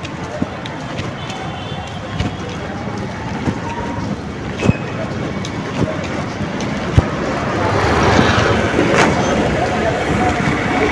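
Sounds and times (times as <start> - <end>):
street traffic: 0.0 - 10.9.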